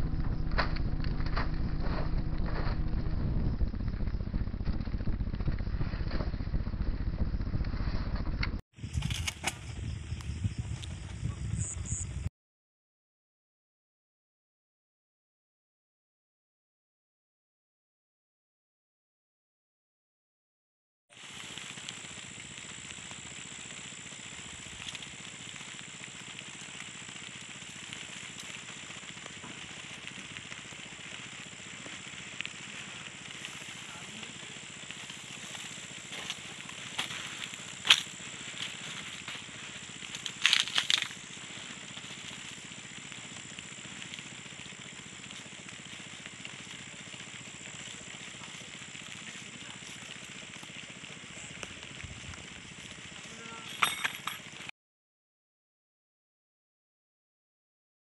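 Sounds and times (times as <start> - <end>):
night insects chorus: 8.8 - 12.3, 21.2 - 53.8.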